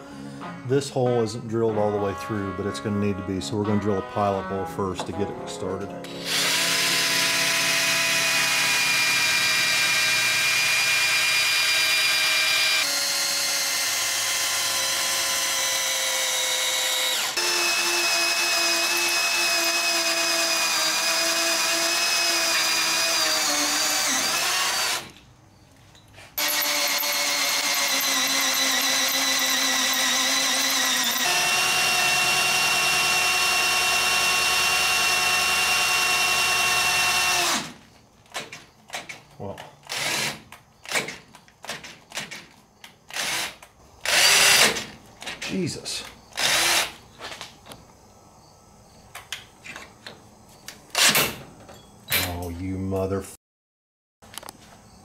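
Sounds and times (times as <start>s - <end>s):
power drill boring through steel: 6.1s - 25.1s, 26.4s - 37.8s, 39.9s - 41.1s, 43.1s - 44.9s, 46.4s - 46.9s.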